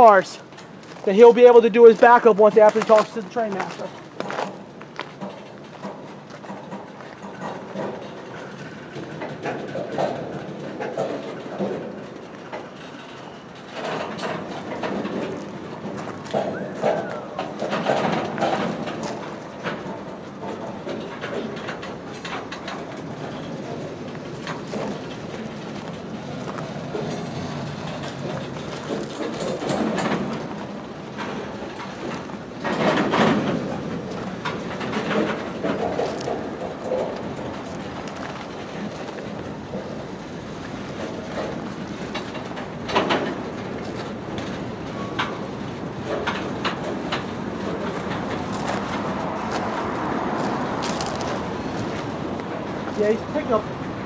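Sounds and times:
freight train wheels clattering on rails: 0:00.0 - 0:54.0.

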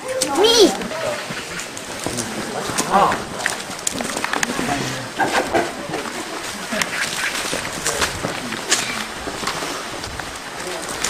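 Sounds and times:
footsteps on stone paving: 0:00.0 - 0:11.0.

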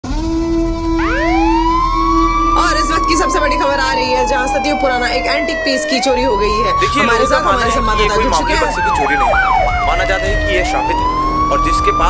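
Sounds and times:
siren wail rising in pitch: 0:00.0 - 0:12.0
steady low tone: 0:06.6 - 0:12.0.

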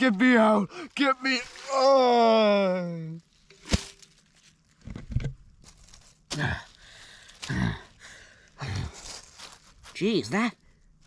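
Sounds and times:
dry leaves rustling: 0:00.0 - 0:04.8, 0:05.6 - 0:10.0
metal pot thumping on leaves: 0:03.4 - 0:04.2.

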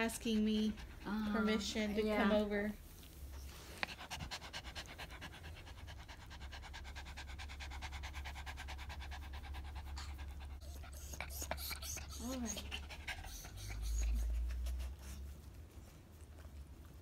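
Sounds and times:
dog panting: 0:00.0 - 0:02.5, 0:03.3 - 0:17.0.

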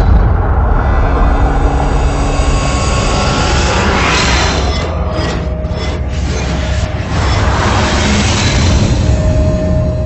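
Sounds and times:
deep rumble: 0:00.0 - 0:10.0.

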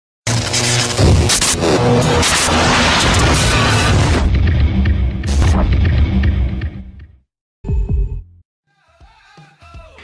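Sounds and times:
heavy bass: 0:00.3 - 0:08.4.

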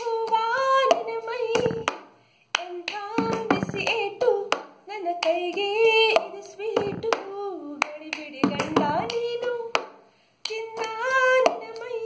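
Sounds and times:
woman singing: 0:00.0 - 0:02.0, 0:02.6 - 0:12.0
hand claps: 0:00.0 - 0:12.0
cup knocking on tabletop: 0:03.2 - 0:03.9.

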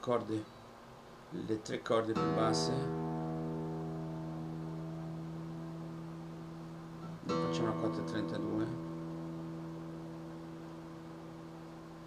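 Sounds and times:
acoustic guitar strummed chord: 0:02.2 - 0:12.0.

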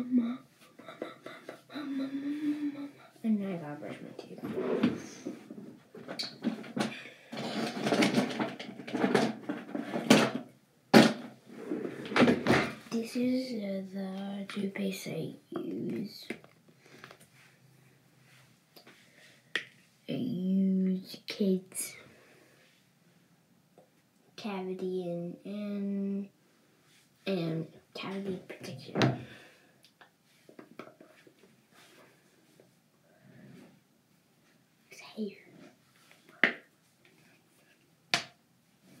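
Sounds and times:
girl whispering: 0:00.0 - 0:05.3, 0:34.9 - 0:35.7.

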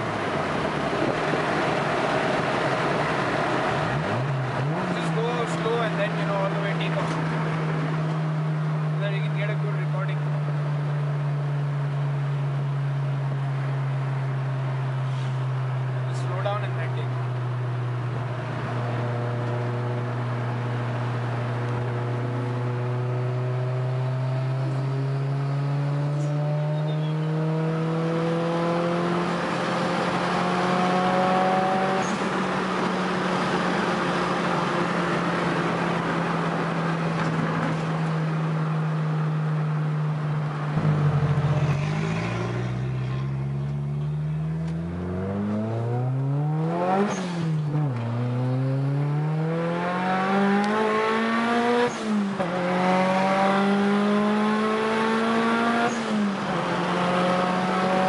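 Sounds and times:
car engine revving while driving: 0:00.0 - 0:58.0.

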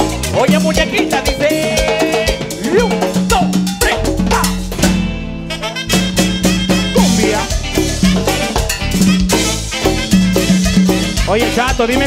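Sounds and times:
drum kit: 0:00.0 - 0:12.0
electric bass line: 0:00.0 - 0:12.0
hand percussion: 0:00.0 - 0:12.0
live band playing dance music: 0:00.0 - 0:12.0.

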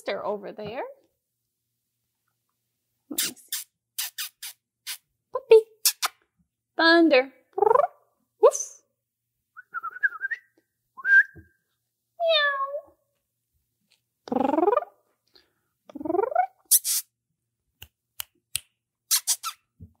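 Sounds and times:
short whistles: 0:09.6 - 0:11.5, 0:19.1 - 0:19.7
squeaky meow-like calls: 0:19.1 - 0:19.6.

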